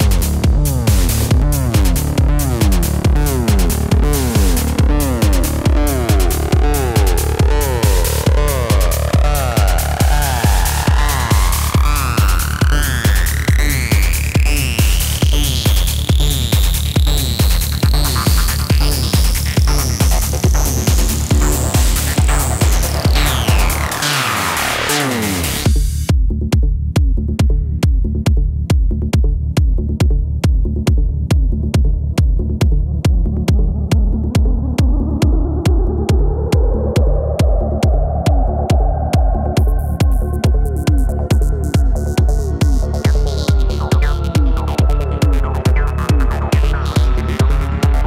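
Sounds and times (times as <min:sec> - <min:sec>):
four-on-the-floor kick drum: 0:00.0 - 0:24.0, 0:25.4 - 0:48.0
rolling bassline: 0:00.0 - 0:48.0
rising synth sweep: 0:00.8 - 0:14.6, 0:20.5 - 0:25.7.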